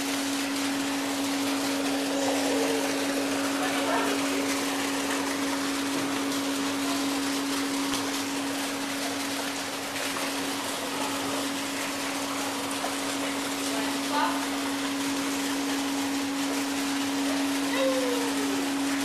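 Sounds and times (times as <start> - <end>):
aquarium pump hum and hiss: 0.0 - 19.0.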